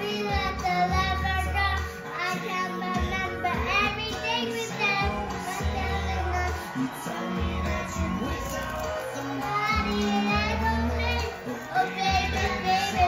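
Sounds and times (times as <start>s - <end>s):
boy singing: 0.0s - 13.0s
country song with guitar and bass: 0.0s - 13.0s.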